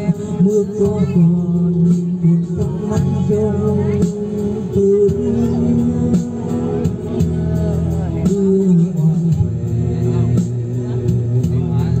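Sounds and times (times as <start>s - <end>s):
melody of long sliding notes: 1.2s - 12.0s.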